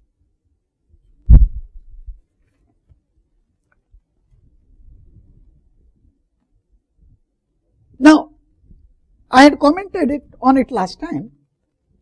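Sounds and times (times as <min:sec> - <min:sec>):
dull low thump: 0:01.3 - 0:02.2.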